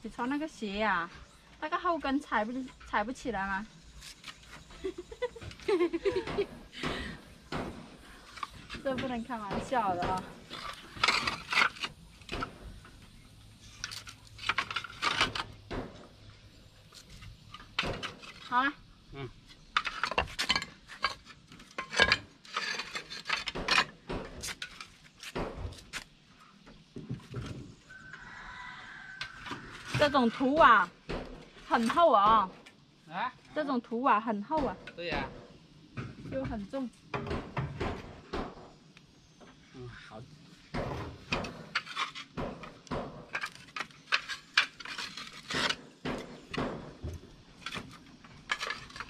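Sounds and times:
roof tiles knocking and clinking: 4.9s - 12.9s, 13.8s - 16.2s, 19.5s - 26.0s, 40.7s - 49.0s.

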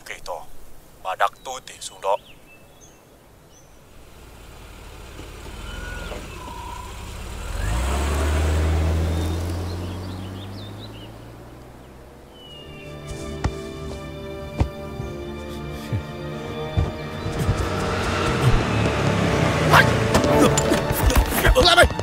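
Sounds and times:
faint bird chirps: 0.5s - 3.9s, 5.5s - 7.2s, 9.1s - 14.2s
car driving past: 4.0s - 13.4s, 16.4s - 21.3s
music: 12.6s - 22.0s.

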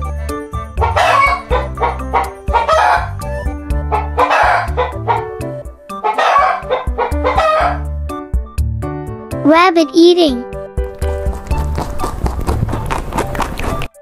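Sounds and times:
background music low notes: 0.0s - 14.0s
roosters crowing: 0.7s - 7.9s.

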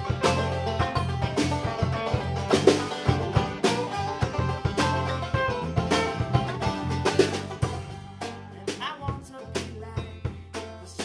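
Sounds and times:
electric guitar: 0.0s - 8.8s
banjo: 0.0s - 11.0s
drum kit beat: 0.0s - 11.0s
electric bass: 0.0s - 11.0s.

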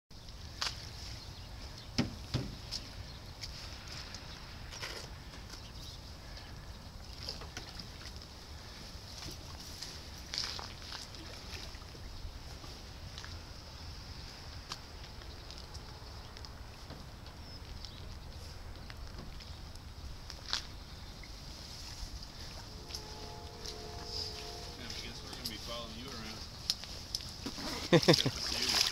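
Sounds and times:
faint steady hiss: 11.0s - 28.9s
person laughing: 27.7s - 28.5s.

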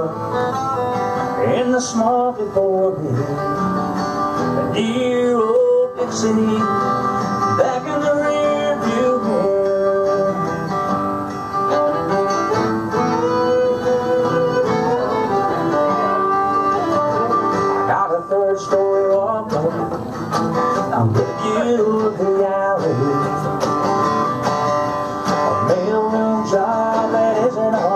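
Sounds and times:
acoustic guitar strumming: 0.0s - 27.9s
fiddle playing melody: 11.5s - 18.3s.

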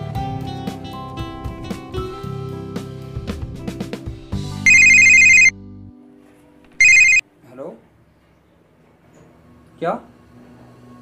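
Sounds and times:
mobile phone ringtone trilling: 4.7s - 5.5s, 6.8s - 7.2s.

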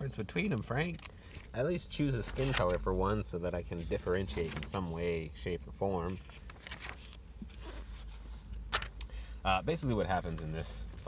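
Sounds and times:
page turning rustle: 0.4s - 1.5s, 2.2s - 2.8s, 3.5s - 5.1s, 6.0s - 9.0s.

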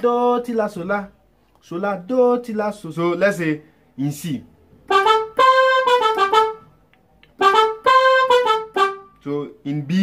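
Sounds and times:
keyboard brass melody: 4.7s - 9.6s.

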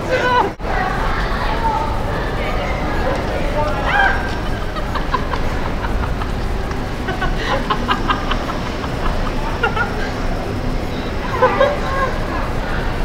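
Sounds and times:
low traffic rumble: 0.0s - 13.0s.

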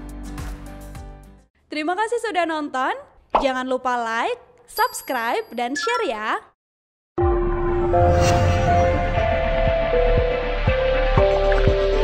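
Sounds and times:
electronic music with steady beat: 9.2s - 12.0s.

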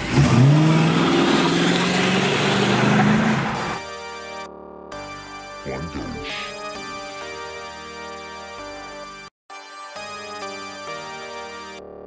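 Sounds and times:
car engine pulling away: 0.0s - 3.8s
music: 3.6s - 12.0s.

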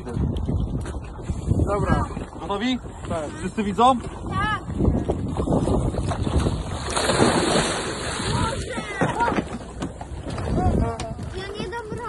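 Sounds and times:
wind buffeting microphone: 0.0s - 12.0s
loud water splash: 6.1s - 9.4s.

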